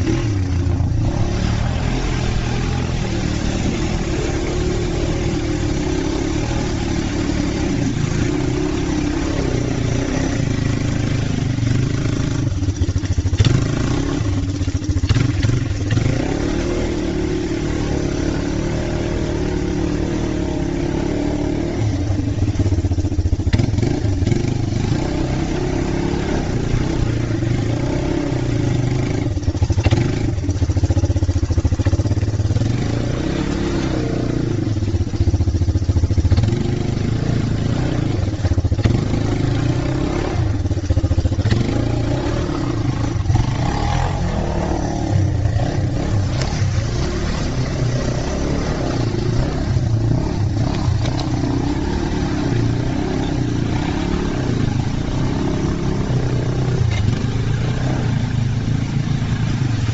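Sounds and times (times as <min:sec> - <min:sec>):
atv engine revving: 0:00.0 - 0:59.9.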